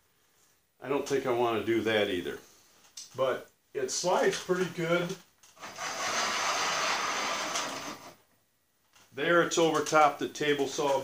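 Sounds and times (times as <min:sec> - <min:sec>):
wooden carriage sliding on metal rails: 0:05.6 - 0:08.2.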